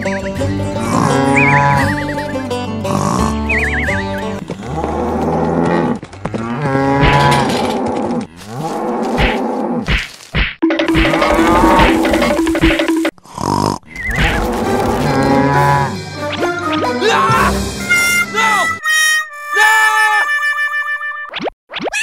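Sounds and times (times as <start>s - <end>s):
cattle mooing: 0.8s - 2.0s, 2.8s - 9.8s, 14.2s - 16.0s.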